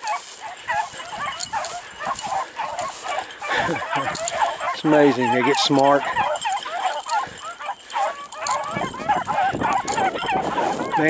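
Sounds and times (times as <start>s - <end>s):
beagles baying: 0.0s - 11.0s.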